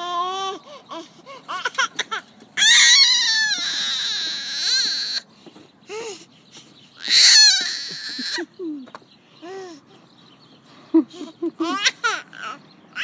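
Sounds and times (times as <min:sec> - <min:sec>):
baby squealing: 0:00.0 - 0:05.2, 0:07.0 - 0:08.6, 0:11.6 - 0:13.0.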